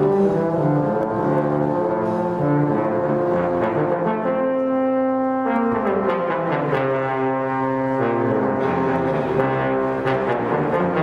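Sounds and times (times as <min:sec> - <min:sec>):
trombones playing held notes: 0:00.0 - 0:11.0.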